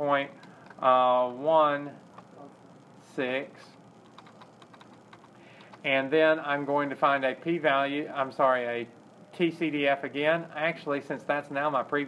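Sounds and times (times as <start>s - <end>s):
computer keyboard typing: 0.4s - 0.8s, 2.1s - 2.4s, 4.0s - 5.9s
man talking: 5.9s - 12.0s.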